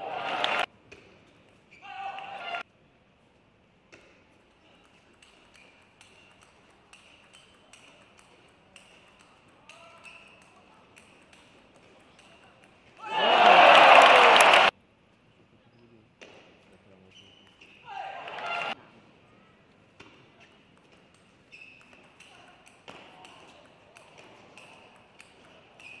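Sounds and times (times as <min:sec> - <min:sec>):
crowd cheering: 0:00.0 - 0:00.7, 0:13.0 - 0:14.7, 0:18.0 - 0:18.8
table tennis ball clicking: 0:04.8 - 0:13.0, 0:20.7 - 0:26.0.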